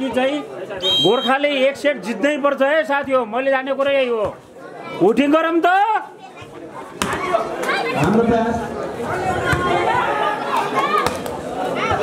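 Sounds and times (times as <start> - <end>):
crowd chattering and shouting: 0.0 - 12.0
volleyball being hit: 7.0 - 7.3, 11.0 - 11.4.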